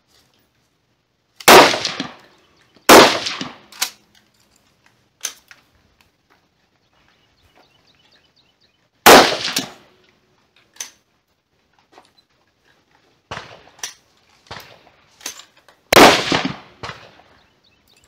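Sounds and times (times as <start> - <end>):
rifle shots with ringing echo: 1.4 - 2.3, 2.9 - 4.0, 9.0 - 9.9, 13.3 - 14.9, 15.9 - 17.5.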